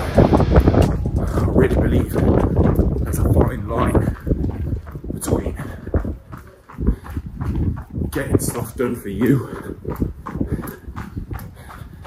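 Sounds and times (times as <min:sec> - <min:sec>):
footfalls on pavement: 0:00.0 - 0:12.0
hard breathing: 0:04.0 - 0:08.0, 0:09.3 - 0:12.0.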